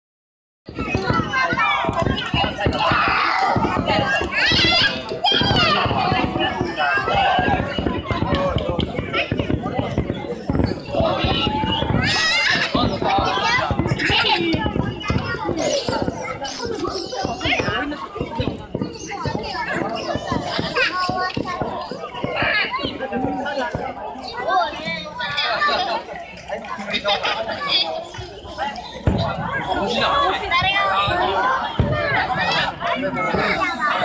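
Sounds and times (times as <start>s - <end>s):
crowd chatter: 0.6s - 34.0s
children talking and calling out: 0.7s - 34.0s.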